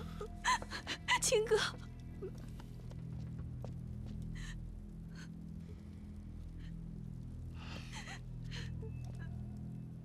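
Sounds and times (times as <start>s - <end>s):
low drama score music: 0.0s - 10.0s.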